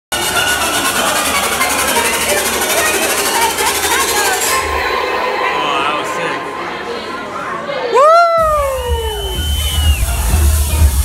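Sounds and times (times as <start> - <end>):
rapid rattling repeat: 0.1 - 4.6
crowd chatter: 0.1 - 11.0
music through speakers: 7.9 - 11.0.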